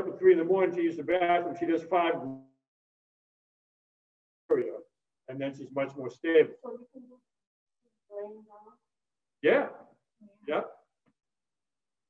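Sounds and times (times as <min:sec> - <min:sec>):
man speaking: 0:00.0 - 0:02.5, 0:04.5 - 0:06.6, 0:09.4 - 0:09.9, 0:10.5 - 0:10.8.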